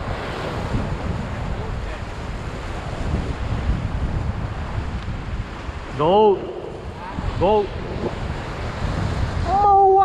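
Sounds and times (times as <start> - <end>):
surf on rocky shore: 0.0 - 10.0
wind buffeting microphone: 0.0 - 10.0.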